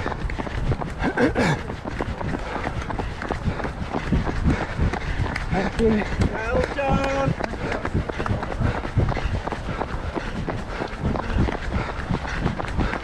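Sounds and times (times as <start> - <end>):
footfalls on tarmac: 0.0 - 13.0.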